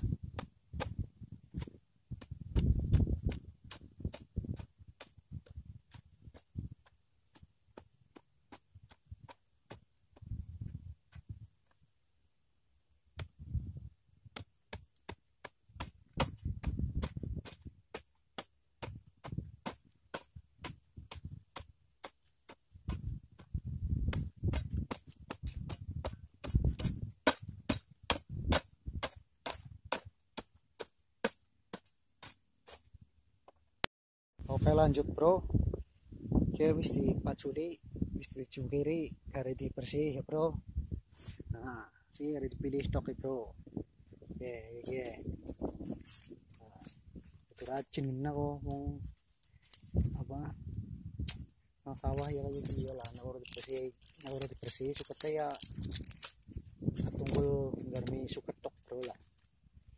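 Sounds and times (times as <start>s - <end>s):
hoe chopping into soil: 24.1s - 32.9s.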